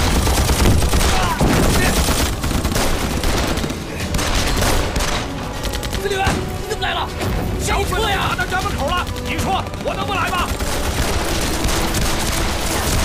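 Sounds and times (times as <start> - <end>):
rifle and machine gun fire: 0.0 - 6.6, 8.0 - 13.0.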